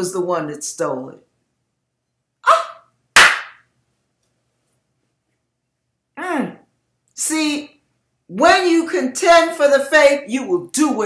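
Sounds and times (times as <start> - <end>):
sharp hand clap: 3.2 - 3.6.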